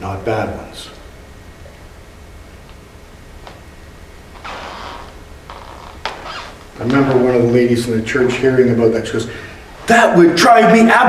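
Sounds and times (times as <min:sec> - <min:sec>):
faint room hum: 0:00.0 - 0:11.0
man speaking: 0:06.8 - 0:11.0.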